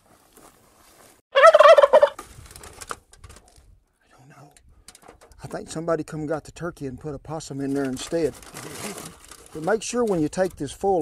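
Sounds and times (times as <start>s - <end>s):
cartoon turkey gobble: 1.4s - 2.2s
aluminium foil crinkling: 7.7s - 10.6s.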